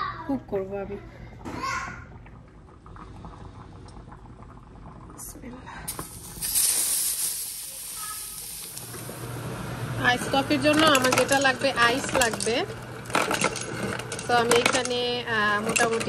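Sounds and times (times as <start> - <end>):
steak sizzling in frying pan: 5.9 - 9.3.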